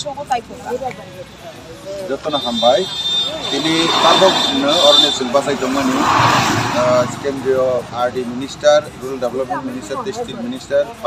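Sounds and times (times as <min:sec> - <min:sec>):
man speaking: 0:01.9 - 0:11.0
vehicle passing: 0:02.0 - 0:10.2.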